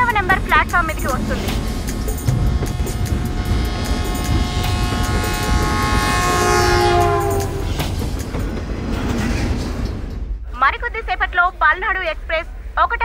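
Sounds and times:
wheels clicking over rail joints: 0.0 - 10.3
diesel locomotive rumbling past: 0.0 - 12.8
locomotive horn: 2.1 - 8.0.

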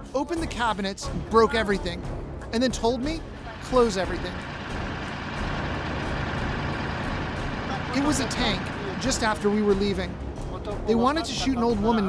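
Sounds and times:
tracked vehicle engine rumble: 1.1 - 12.0.

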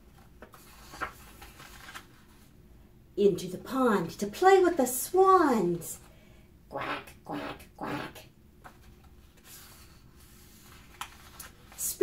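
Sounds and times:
book page turning: 0.0 - 2.5, 8.6 - 12.0.

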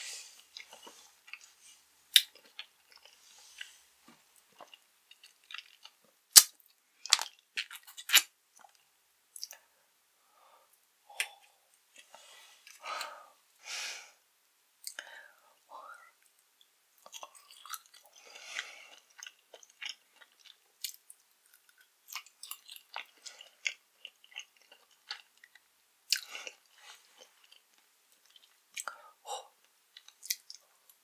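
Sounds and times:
mouth chewing jelly: 17.0 - 30.6.

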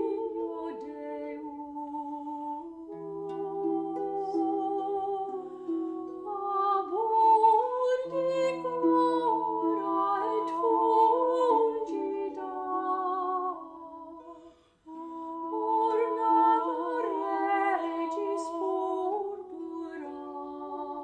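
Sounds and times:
women singing in harmony: 0.0 - 21.0.

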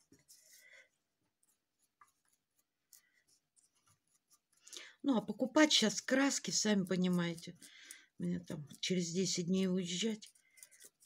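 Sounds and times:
paintbrush scrubbing: 0.0 - 11.0.

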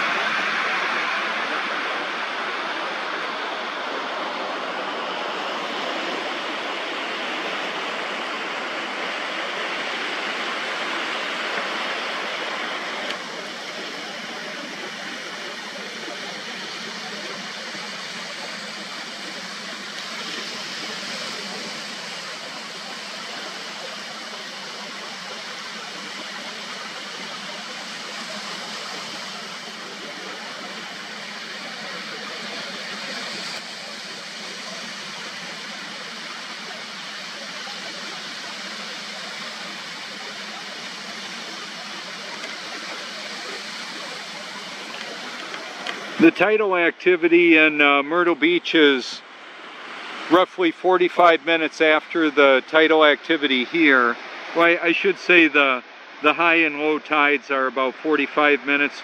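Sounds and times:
waves breaking on a beach: 0.0 - 59.0.

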